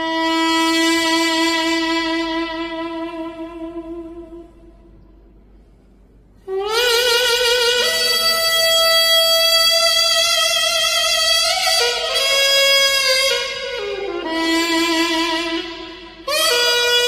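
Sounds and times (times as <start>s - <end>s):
double-reed pipe melody: 0.0s - 4.8s, 6.4s - 17.0s.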